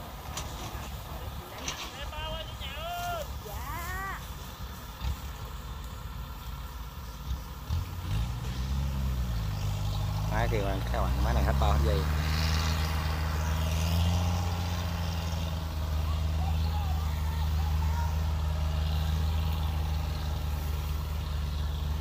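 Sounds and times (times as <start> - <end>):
diesel engine rumbling: 0.0 - 22.0.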